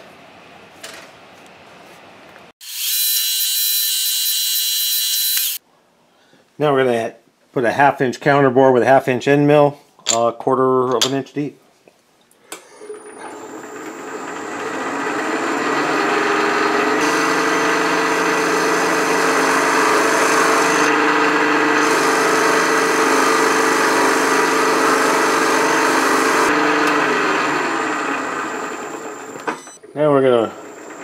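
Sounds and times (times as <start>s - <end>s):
motor hum: 2.7s - 5.6s, 12.8s - 29.7s.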